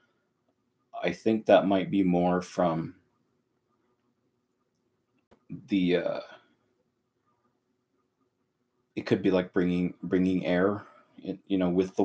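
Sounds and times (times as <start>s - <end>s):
faint room hum: 0.0s - 12.0s
man saying uh: 1.0s - 2.9s, 5.5s - 6.4s, 9.0s - 12.0s.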